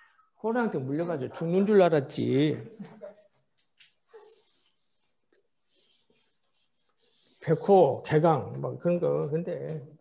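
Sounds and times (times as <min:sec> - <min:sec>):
board eraser wiping chalkboard: 0:04.1 - 0:08.3.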